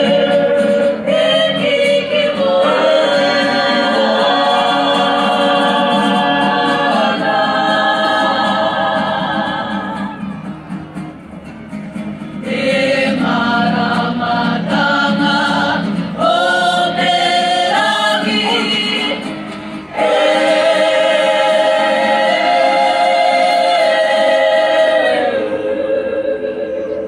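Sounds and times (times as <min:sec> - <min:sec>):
group singing in harmony: 0:00.0 - 0:10.4, 0:12.3 - 0:27.0.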